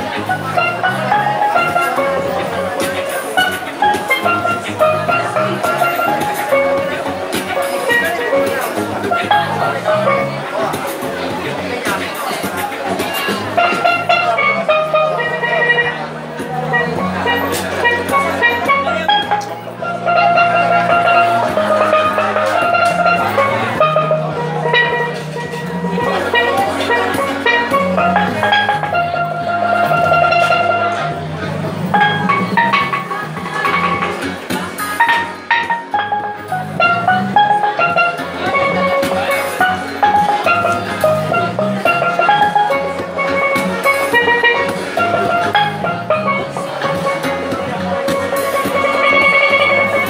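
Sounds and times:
steelpan melody: 0.0s - 50.0s.

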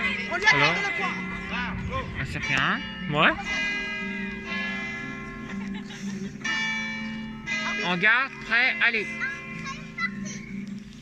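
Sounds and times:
bell-like ringing notes: 0.0s - 11.0s.

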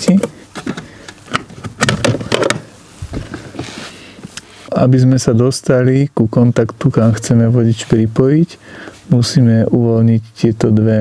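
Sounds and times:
plastic cover clicking and rattling: 0.1s - 2.6s.

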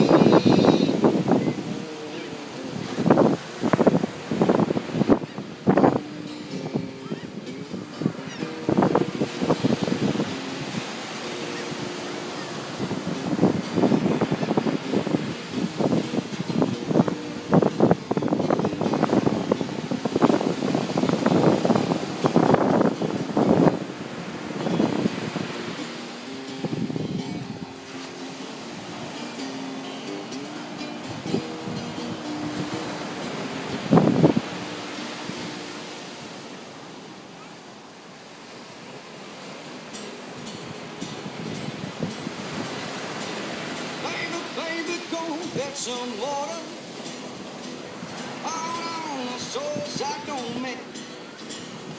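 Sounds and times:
surf breaking on beach: 0.0s - 51.9s
wind buffeting microphone: 0.0s - 51.9s.

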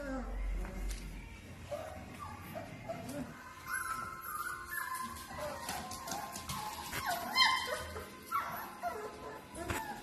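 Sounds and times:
puppies yipping and barking: 1.5s - 10.0s.

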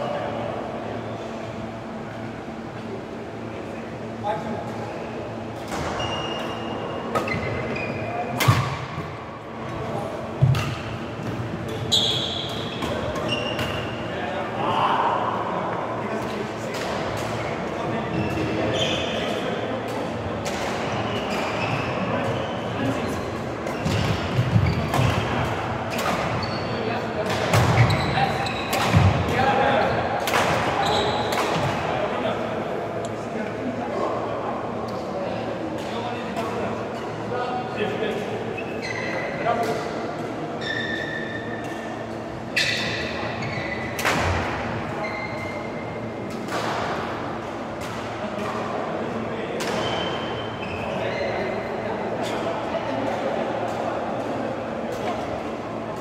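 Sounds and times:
shoes squeaking on court floor: 5.4s - 9.0s, 10.3s - 14.0s, 17.4s - 19.4s, 20.8s - 29.2s, 30.8s - 31.7s, 38.6s - 39.6s, 40.6s - 44.0s, 45.0s - 45.9s, 49.7s - 51.6s.

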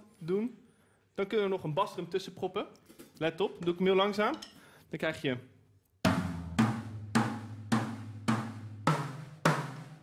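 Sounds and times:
acoustic drum kit played slowly: 6.0s - 10.0s.

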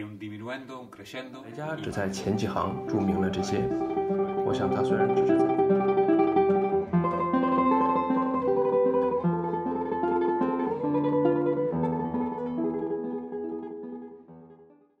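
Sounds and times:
plucked guitar music: 0.0s - 15.0s.

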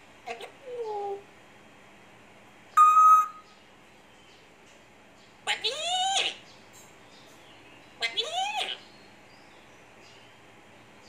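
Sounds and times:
parrot speech-like call: 0.2s - 1.3s, 5.5s - 6.4s, 8.0s - 8.9s
parrot whistled note: 2.8s - 3.4s.

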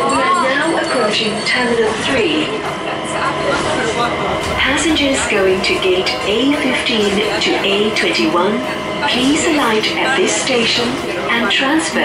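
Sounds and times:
several voices talking: 0.0s - 12.0s
train running rumble: 1.1s - 12.0s.

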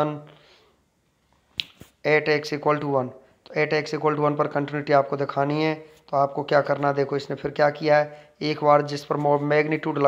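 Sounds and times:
man speaking: 0.0s - 0.4s, 2.0s - 10.0s.

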